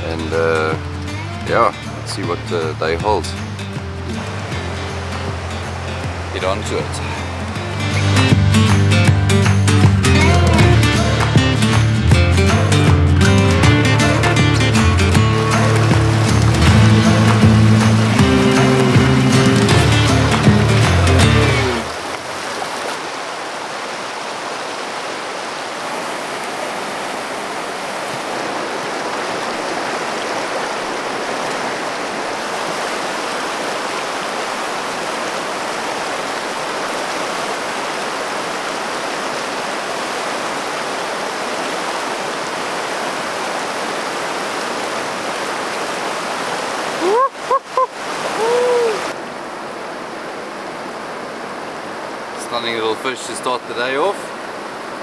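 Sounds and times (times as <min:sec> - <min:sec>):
stream rushing over rocks: 0:00.0 - 0:55.0
rising and falling calls: 0:47.0 - 0:49.2.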